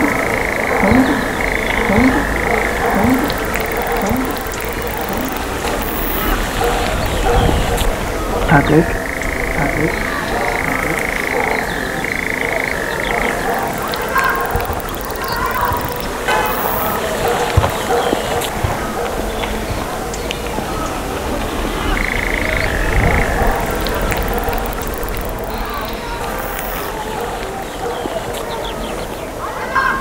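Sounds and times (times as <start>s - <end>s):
high steady tone: 0.0s - 6.7s, 13.4s - 17.1s, 22.4s - 27.2s
glitchy modular synth clicks and blips: 0.0s - 18.5s, 21.8s - 27.6s.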